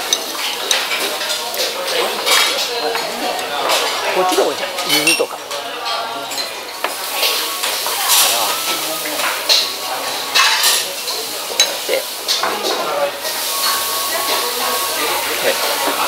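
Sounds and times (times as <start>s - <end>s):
tableware clinking: 0.0s - 16.0s.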